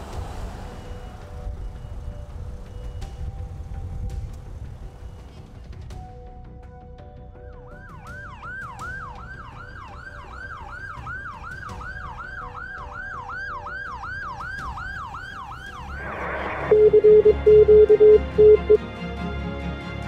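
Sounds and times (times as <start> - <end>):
low rumble of traffic: 0.0 - 6.6
ambulance siren yelp: 7.4 - 18.8.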